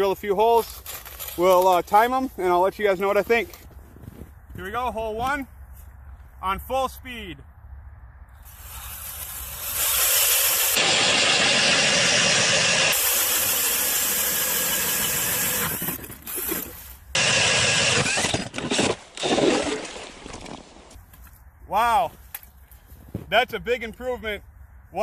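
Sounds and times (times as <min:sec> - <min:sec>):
drill auger cutting through ice: 0:08.5 - 0:20.6.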